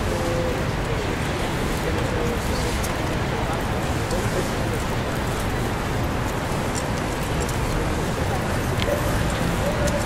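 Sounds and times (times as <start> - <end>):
faint voices of passers-by: 0.0 - 10.0
traffic noise: 0.0 - 10.0.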